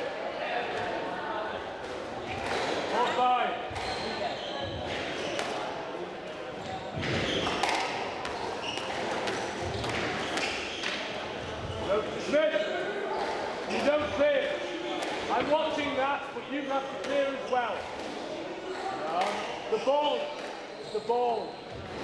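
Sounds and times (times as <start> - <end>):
squash ball hitting rackets and walls: 1.8 - 5.7, 6.6 - 11.8, 13.1 - 15.6
shoes squeaking on wooden floor: 2.2 - 5.4, 6.5 - 12.0.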